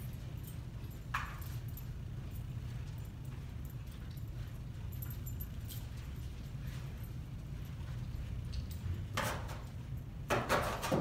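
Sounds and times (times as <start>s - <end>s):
collar tags jingling: 0.0s - 10.3s
low room hum: 0.0s - 11.0s.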